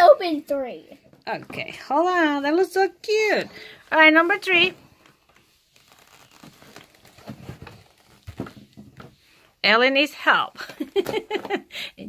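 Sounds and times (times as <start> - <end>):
cardboard crinkles and clicks: 4.9 - 9.2.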